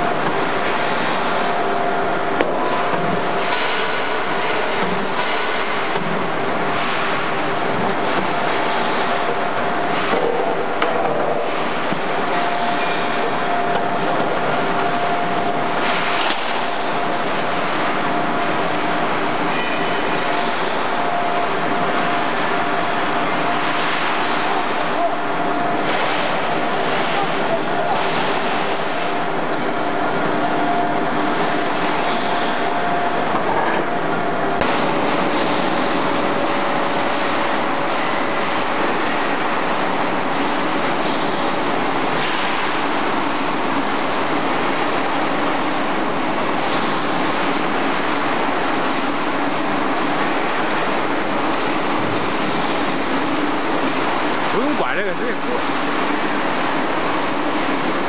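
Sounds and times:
machine rollers and gears running: 0:00.0 - 0:58.0.

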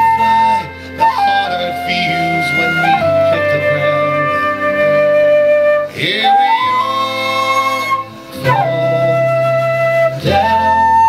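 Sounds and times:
backing track music: 0:00.0 - 0:11.0
flute playing long notes: 0:00.0 - 0:11.0.

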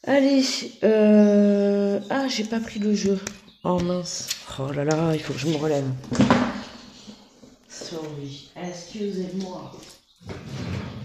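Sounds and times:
person speaking: 0:00.0 - 0:10.0.

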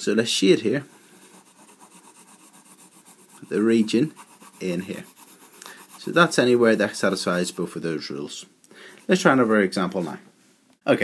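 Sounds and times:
pencil scribbling on paper: 0:00.9 - 0:07.8.

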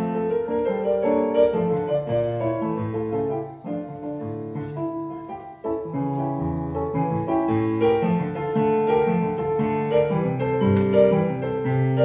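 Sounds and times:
electronic keyboard piano melody: 0:00.0 - 0:12.0.

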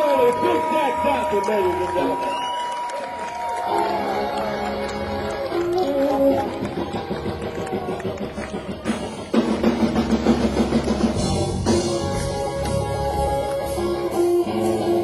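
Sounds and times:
live blues band playing: 0:03.9 - 0:15.0.

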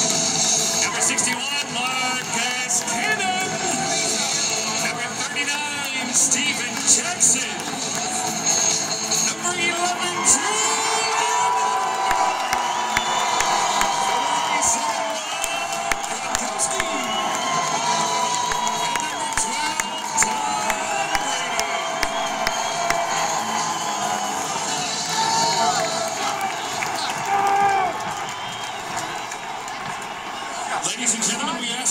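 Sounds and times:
crowd cheering and yelling: 0:00.0 - 0:31.9
music over loudspeakers: 0:00.0 - 0:31.9.

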